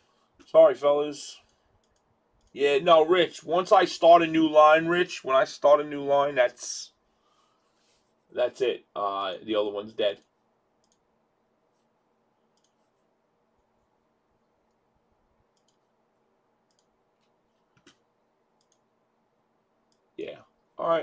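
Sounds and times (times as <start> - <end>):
faint electrical hum: 0.0 - 21.0
faint clicks: 1.4 - 2.6, 10.2 - 11.1, 12.5 - 12.9, 15.5 - 15.9, 16.6 - 18.0, 18.6 - 18.9.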